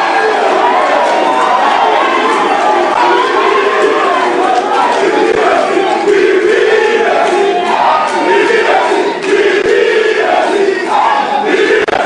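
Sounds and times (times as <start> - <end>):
large crowd cheering and shouting: 0.0 - 12.0.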